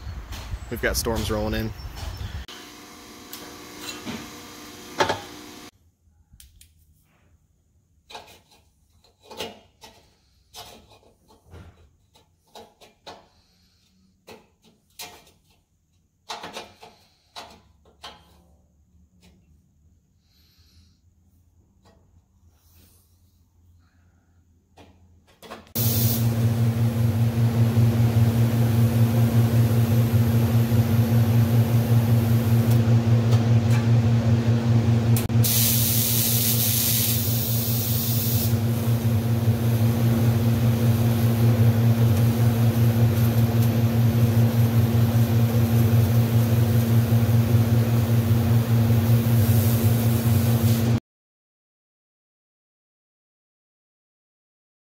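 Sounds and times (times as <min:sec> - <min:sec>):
welding arc crackling hiss: 0:25.8 - 0:32.8, 0:35.2 - 0:51.0.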